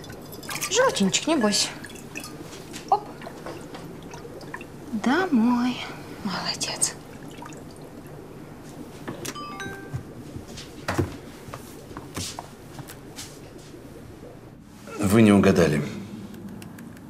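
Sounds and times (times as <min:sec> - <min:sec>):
water dripping and splashing: 0:00.0 - 0:14.4.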